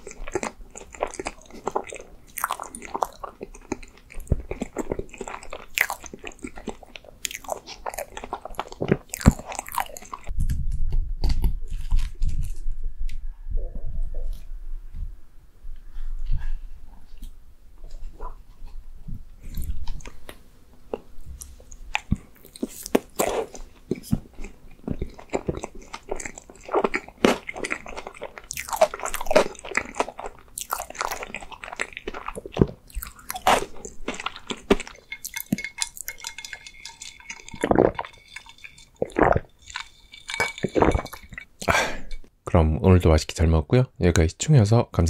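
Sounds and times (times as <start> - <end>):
chewing and wet mouth sounds: 0.0 - 12.6, 19.4 - 42.3.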